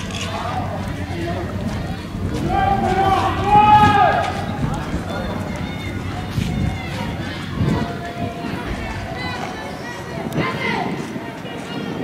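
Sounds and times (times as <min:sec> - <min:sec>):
indistinct voices: 0:00.0 - 0:12.0
steady outdoor noise: 0:00.0 - 0:12.0.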